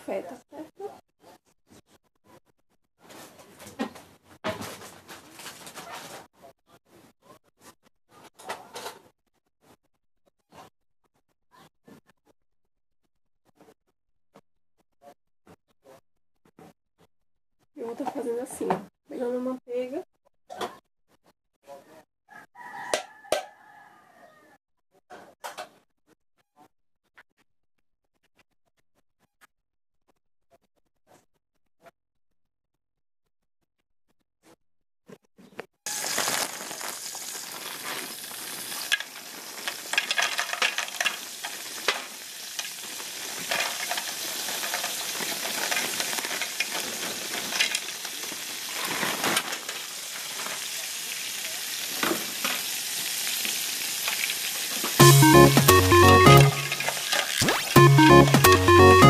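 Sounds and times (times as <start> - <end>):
household items rustling and scraping: 3.0 - 6.3, 35.9 - 50.7, 56.6 - 57.7.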